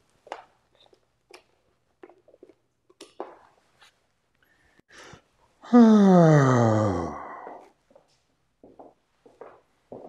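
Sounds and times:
man sighing: 4.9s - 7.6s.

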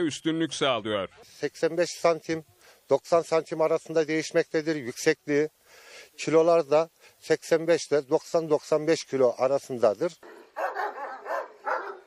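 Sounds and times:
large dogs barking: 10.2s - 12.0s.

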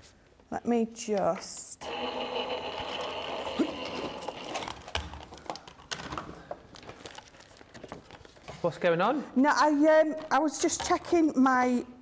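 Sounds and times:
electric motor whirring: 1.8s - 4.7s.

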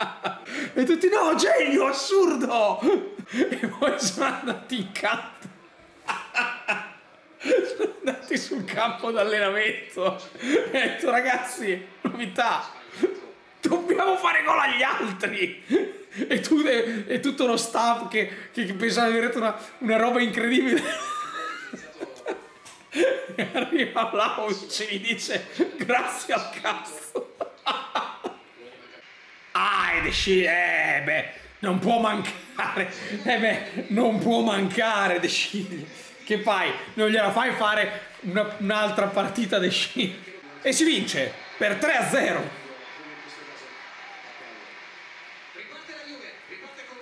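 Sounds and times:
man talking: 0.5s - 5.5s, 29.6s - 43.8s.

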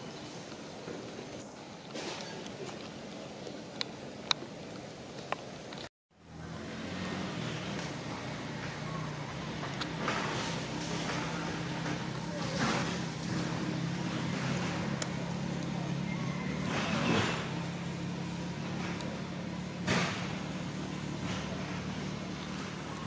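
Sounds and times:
low motor hum: 2.5s - 23.0s.

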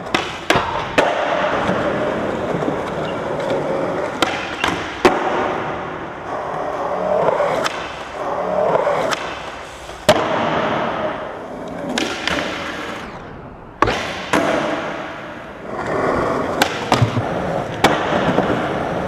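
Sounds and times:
skateboard clacks: 0.0s - 13.0s, 13.8s - 19.0s
skateboard wheels rumbling: 0.0s - 19.0s.

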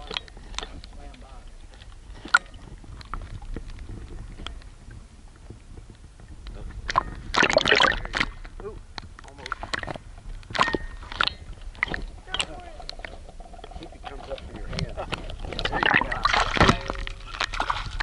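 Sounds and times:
water sloshing and splashing: 0.0s - 18.0s.

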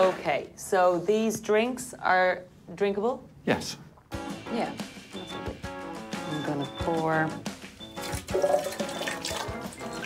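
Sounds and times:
background music: 3.5s - 10.0s
juice pouring from a flask: 8.0s - 10.0s.

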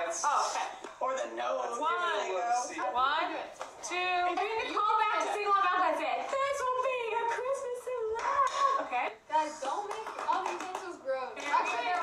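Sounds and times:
hand clapping: 9.6s - 12.0s.

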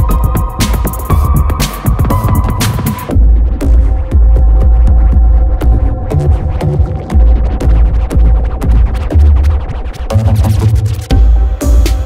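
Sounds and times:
deep bass synth: 0.0s - 12.0s.

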